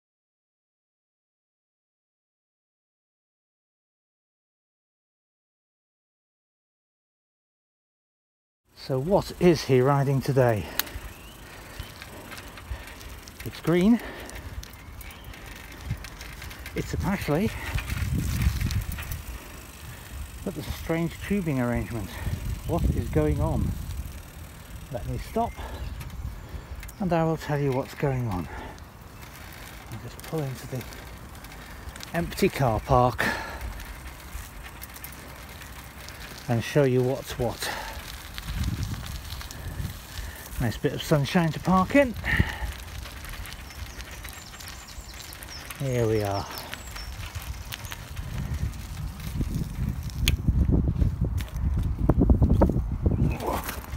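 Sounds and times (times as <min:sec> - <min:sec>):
bicycle tyres rumbling on road: 0:08.7 - 0:53.9.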